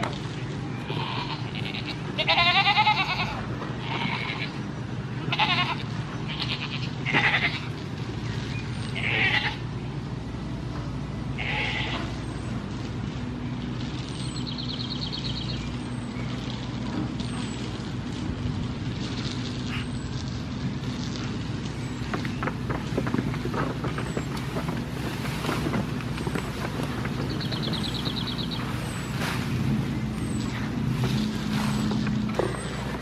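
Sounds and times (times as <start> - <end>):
steady low hum: 0.0 - 33.0
goats bleating: 0.8 - 7.9, 9.0 - 9.7, 11.3 - 12.2.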